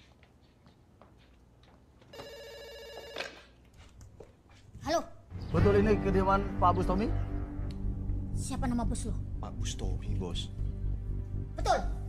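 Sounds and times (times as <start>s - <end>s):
telephone ringing with electronic trill: 2.2s - 3.4s.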